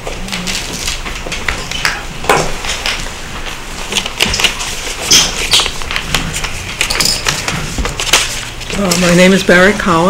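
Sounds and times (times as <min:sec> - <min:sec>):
people moving about rustling: 0:02.6 - 0:09.4.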